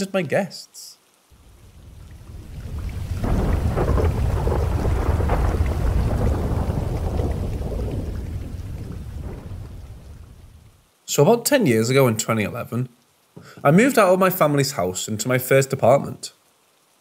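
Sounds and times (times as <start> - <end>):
rain: 0.0 - 17.0
rolling thunder: 1.4 - 10.8.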